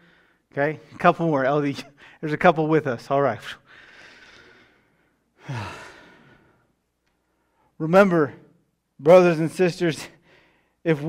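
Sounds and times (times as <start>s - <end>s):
man sighing: 5.4s - 6.4s.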